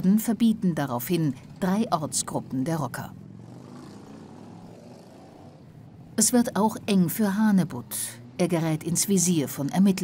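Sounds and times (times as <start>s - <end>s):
street background noise: 0.0s - 10.0s.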